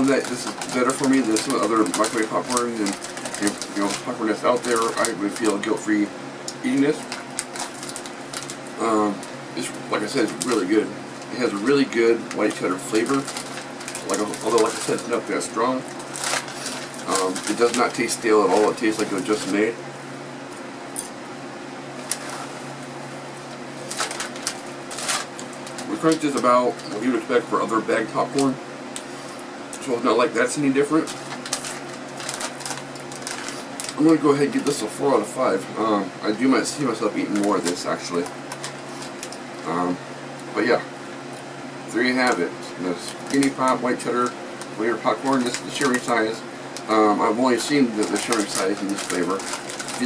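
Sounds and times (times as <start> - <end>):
plastic bag crinkling: 0.0 - 19.7, 23.4 - 35.0, 36.6 - 39.6, 42.2 - 50.0
steady low hum: 0.0 - 50.0.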